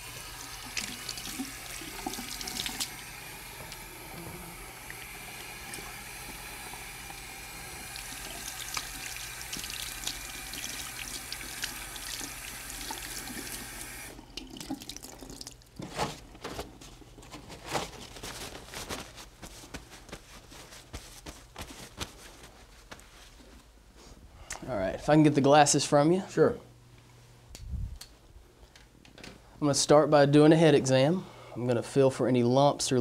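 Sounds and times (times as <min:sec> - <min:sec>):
tap water running into sink: 0:00.0 - 0:15.6
paper towels rustling: 0:15.8 - 0:24.2.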